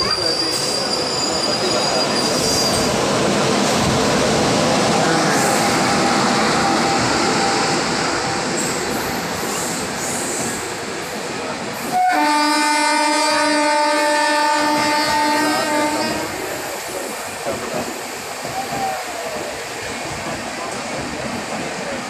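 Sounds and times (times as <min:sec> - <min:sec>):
train wheels rumbling on rails: 0:00.0 - 0:22.0
faint wheel squeal: 0:00.1 - 0:02.9.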